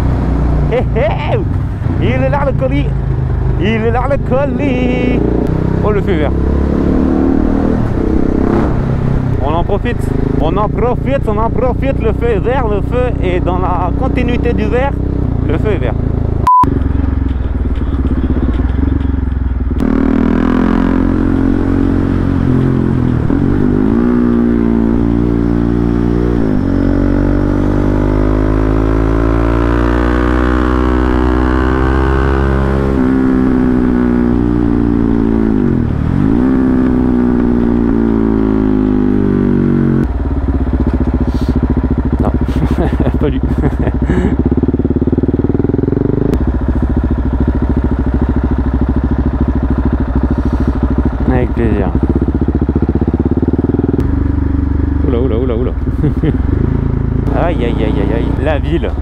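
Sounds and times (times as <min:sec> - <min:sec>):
motorcycle engine while riding: 0:00.0 - 0:59.0.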